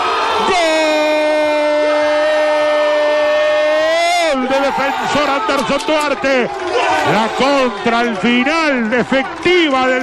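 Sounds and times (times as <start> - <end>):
man talking rapidly: 4.0 - 10.0.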